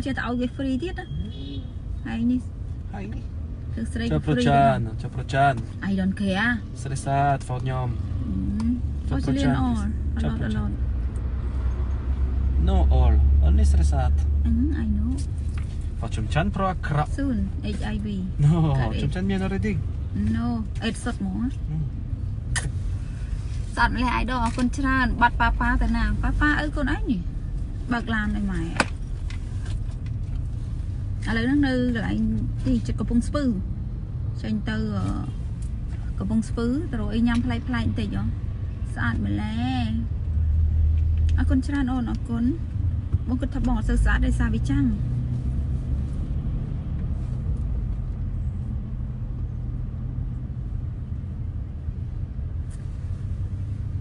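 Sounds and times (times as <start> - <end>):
woman talking: 0.0 - 1.3, 2.1 - 2.4, 5.8 - 6.6, 8.3 - 10.8, 14.5 - 15.3, 17.2 - 19.0, 20.2 - 21.6, 23.8 - 27.3, 27.9 - 28.9, 31.2 - 33.6, 34.4 - 35.4, 36.2 - 40.1, 41.4 - 45.0
car engine rumble: 0.0 - 54.0
road noise inside car: 0.0 - 54.0.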